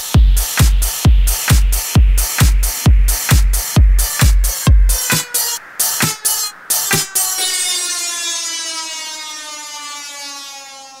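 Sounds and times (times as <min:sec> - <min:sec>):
house music beat: 0:00.0 - 0:08.1
sustained synth chord sliding down: 0:03.2 - 0:11.0.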